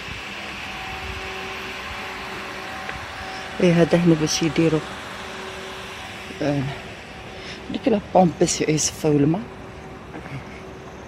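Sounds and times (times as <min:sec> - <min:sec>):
pool pump motor humming: 0:00.0 - 0:11.0.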